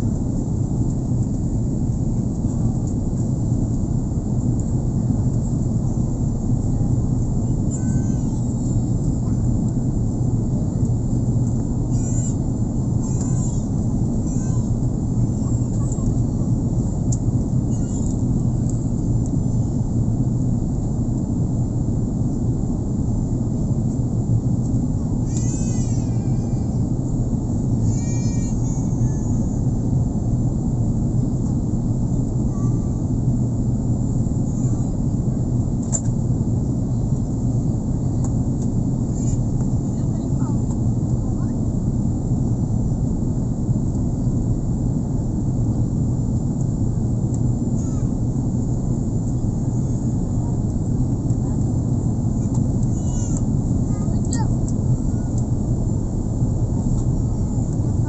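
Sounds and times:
airliner cabin engine rumble: 0.0s - 58.0s.

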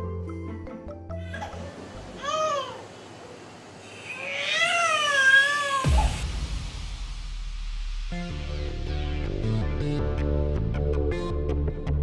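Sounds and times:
low background music: 0.0s - 2.8s, 4.3s - 12.0s
infant crying: 1.2s - 2.9s, 3.9s - 6.2s.

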